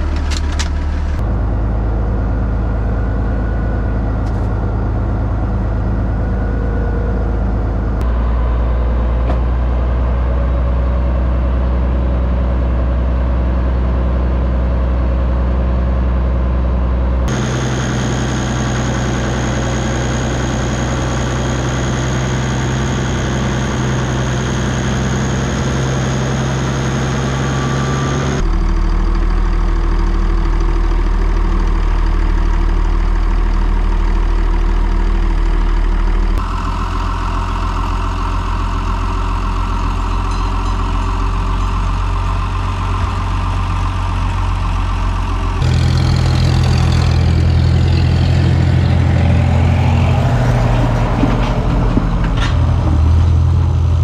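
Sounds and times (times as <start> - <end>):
tractor engines running: 0.0 - 54.0.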